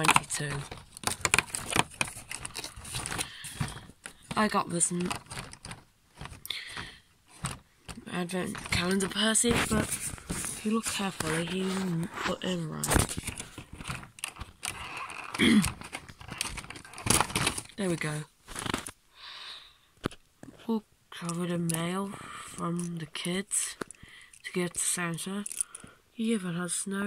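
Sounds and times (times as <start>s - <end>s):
cardboard crinkling and tearing: 0.0s - 19.0s.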